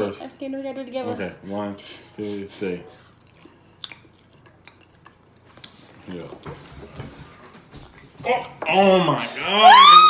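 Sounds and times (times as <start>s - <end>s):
people chewing: 2.3s - 8.2s.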